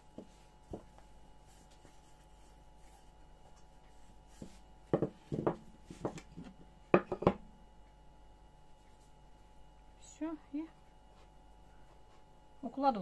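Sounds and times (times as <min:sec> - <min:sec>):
rolling pin rolling over dough: 0:00.0 - 0:07.4
wooden knocks and clatters: 0:04.9 - 0:07.4.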